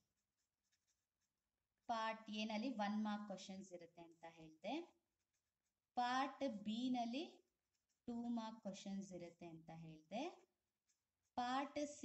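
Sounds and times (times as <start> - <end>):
woman speaking: 1.9 - 5.0, 6.0 - 7.4, 8.1 - 10.4, 11.4 - 12.0.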